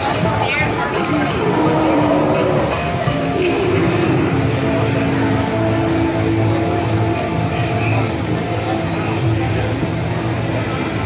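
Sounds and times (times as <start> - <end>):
steady noisy din: 0.0 - 11.0.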